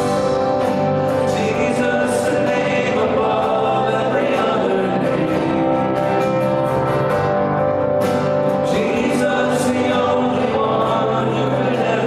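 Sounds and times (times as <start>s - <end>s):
worship band playing: 0.0s - 12.0s.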